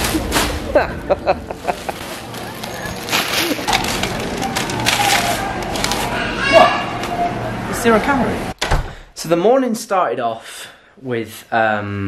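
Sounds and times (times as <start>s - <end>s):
indistinct shoppers' voices: 1.4s - 8.5s.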